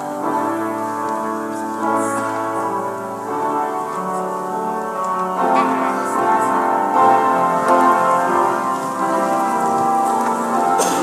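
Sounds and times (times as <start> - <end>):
keyboard playing held chords: 0.0 - 11.0
rustling noise: 0.0 - 11.0.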